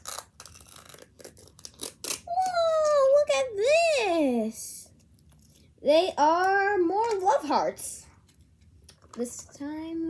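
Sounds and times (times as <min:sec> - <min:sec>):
plastic wrapping crinkling and tearing: 0:00.0 - 0:02.6.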